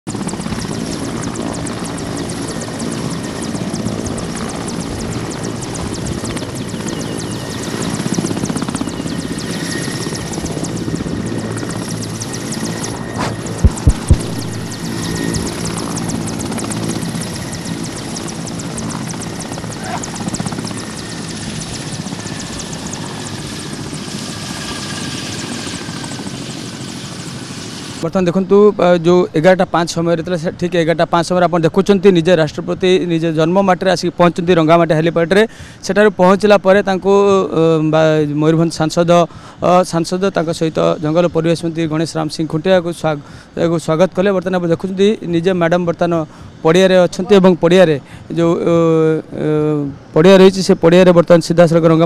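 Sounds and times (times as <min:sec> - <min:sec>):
helicopter rotor and turbine din: 0:00.0 - 0:52.0
high turbine whine: 0:00.1 - 0:28.7, 0:32.5 - 0:52.0
loud low thumps: 0:13.2 - 0:15.8.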